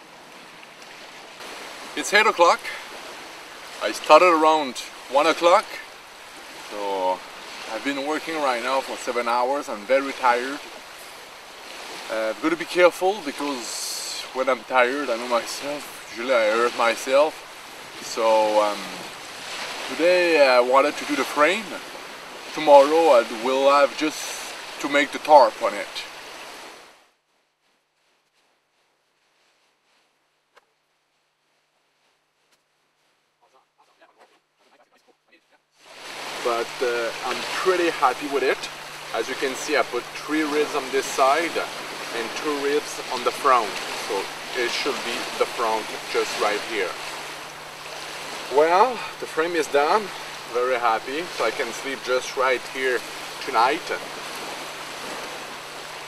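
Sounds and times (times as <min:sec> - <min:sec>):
outdoor background hiss: 0:00.0 - 0:56.0.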